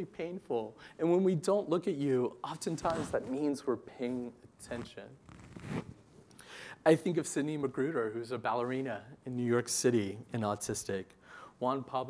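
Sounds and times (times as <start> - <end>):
man speaking: 0.0 - 5.2, 6.8 - 12.0
soft rustle: 2.6 - 6.3.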